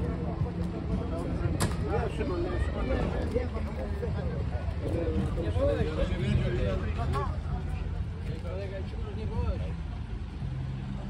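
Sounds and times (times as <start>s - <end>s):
people's voices: 0.0s - 11.0s
tractor diesel engines idling: 0.0s - 11.0s.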